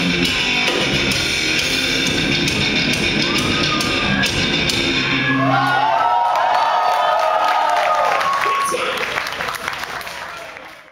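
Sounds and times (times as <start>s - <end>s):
crowd cheering and clapping: 2.8s - 10.9s.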